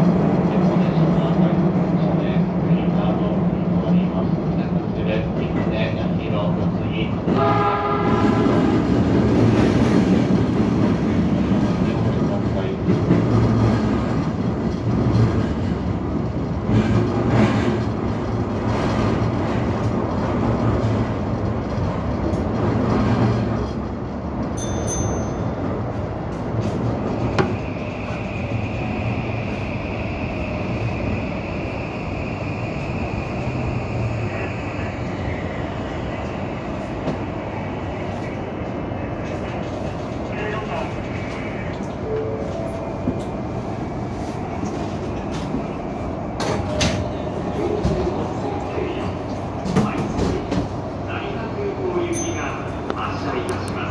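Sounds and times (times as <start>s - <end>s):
subway train motor hum: 0.0s - 53.9s
high brake whine: 27.2s - 38.5s.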